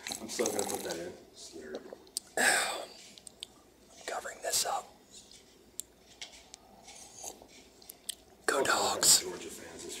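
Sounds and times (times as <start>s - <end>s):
man whispering: 4.0s - 5.0s, 8.4s - 10.0s.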